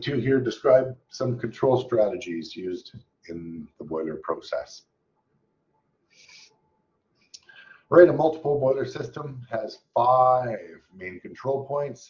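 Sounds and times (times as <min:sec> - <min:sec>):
faint hiss: 0:06.1 - 0:12.0.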